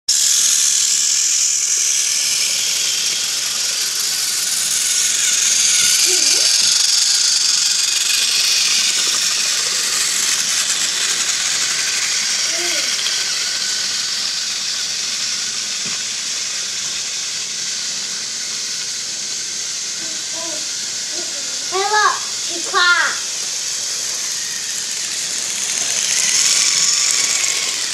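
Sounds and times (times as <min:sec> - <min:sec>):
toy train motor whirring: 0:00.1 - 0:27.9.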